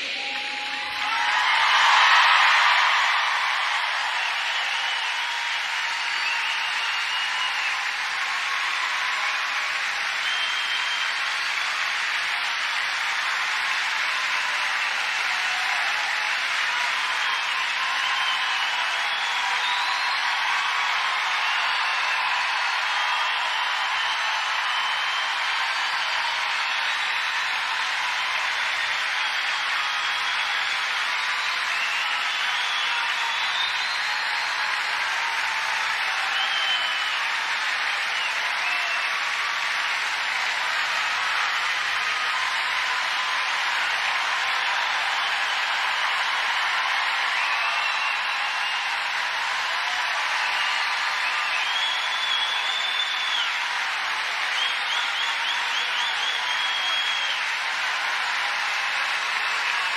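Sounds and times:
large audience applauding: 0:00.0 - 0:59.9.

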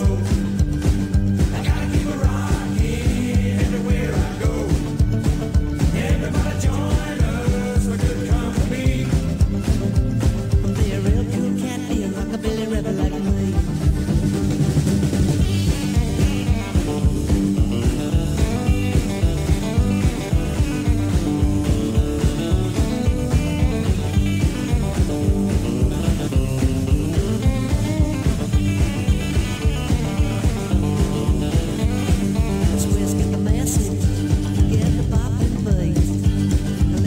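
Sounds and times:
rockabilly band playing: 0:00.0 - 0:37.0.

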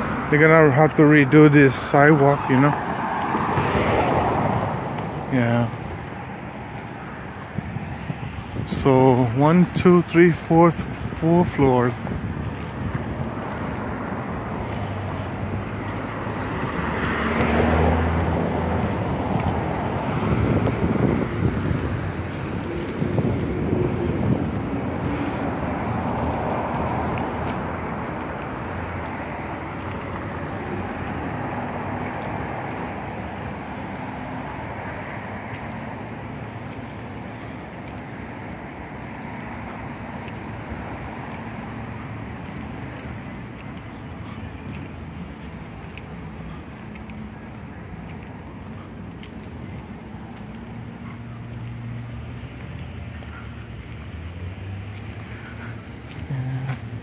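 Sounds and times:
road traffic noise: 0:00.0 - 0:57.0
vehicle passing: 0:00.0 - 0:57.0.

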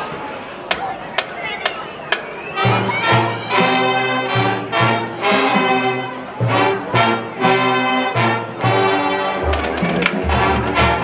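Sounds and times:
faint crowd chatter: 0:00.0 - 0:11.0.

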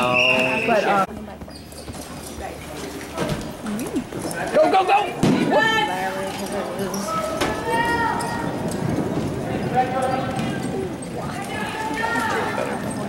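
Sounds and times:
people calling out: 0:06.9 - 0:13.0.

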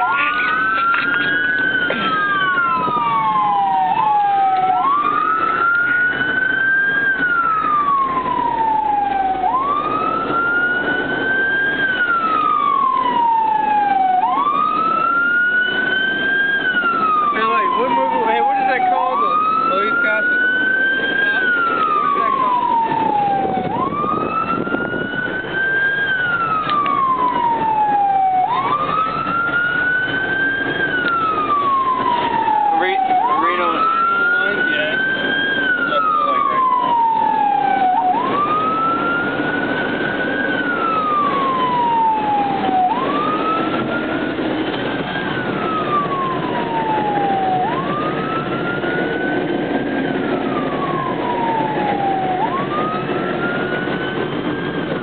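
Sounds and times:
emergency siren wailing: 0:00.0 - 0:55.0.

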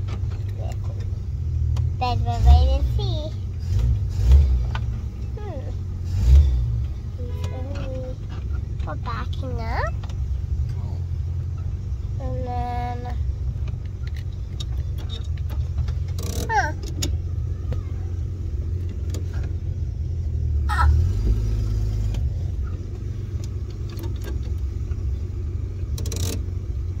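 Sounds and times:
car engine droning: 0:00.0 - 0:27.0.

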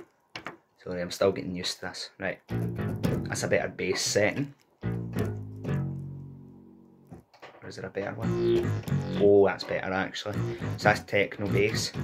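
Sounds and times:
synth bass notes: 0:08.1 - 0:09.5, 0:10.2 - 0:12.0.

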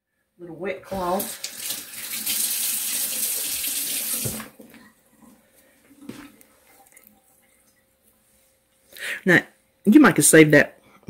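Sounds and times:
water running from a tap: 0:01.0 - 0:04.6.

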